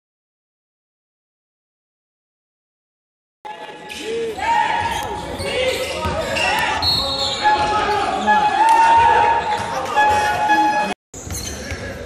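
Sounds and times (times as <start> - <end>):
players' voices echoing: 3.5 - 12.0.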